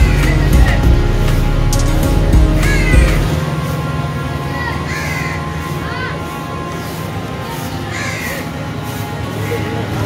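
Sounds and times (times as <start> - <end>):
steady low drone: 0.0 - 10.0
crow cawing: 2.6 - 3.3, 4.5 - 6.2, 7.6 - 8.6.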